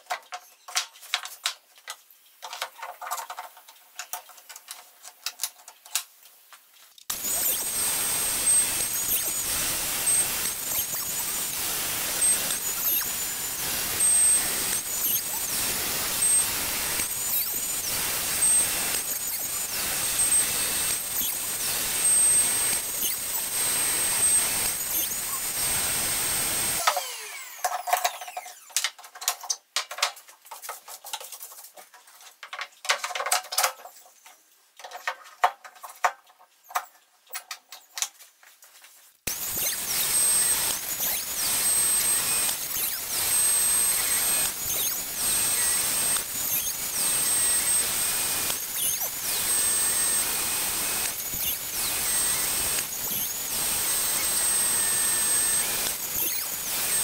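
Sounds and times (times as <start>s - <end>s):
router whining while cutting: 7.1s - 28.8s, 39.3s - 57.0s.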